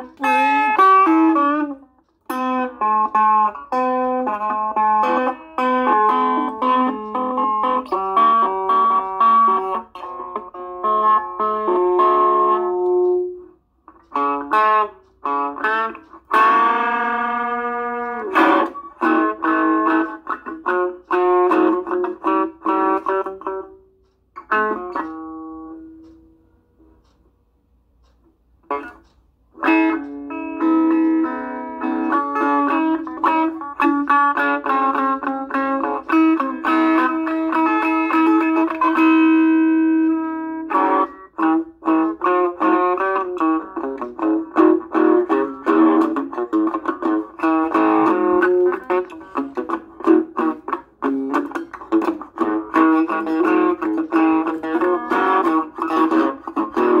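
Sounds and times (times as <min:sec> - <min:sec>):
electric guitar playing: 0:00.0 - 0:26.9, 0:28.6 - 0:57.0.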